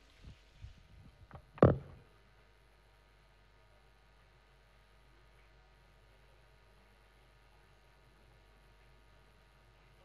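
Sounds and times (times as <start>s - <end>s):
knocks on microphone: 1.3s - 2.0s.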